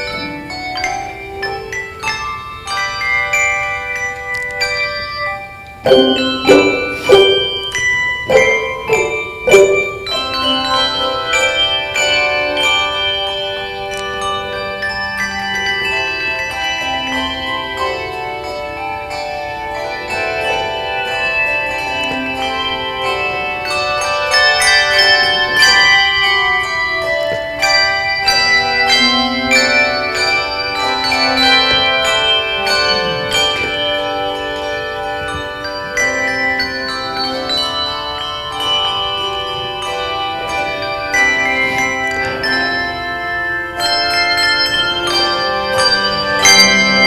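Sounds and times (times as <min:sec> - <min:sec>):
handbell chords ringing: 0:00.0 - 0:47.0.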